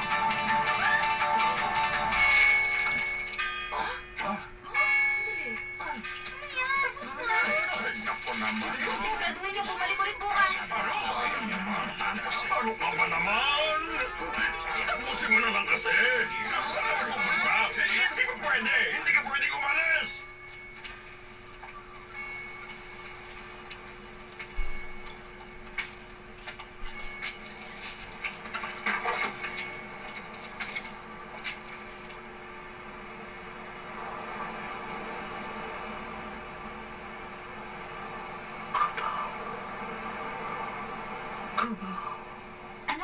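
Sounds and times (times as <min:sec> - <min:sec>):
faint film soundtrack: 0:00.0 - 0:43.0
steady hum: 0:00.0 - 0:43.0.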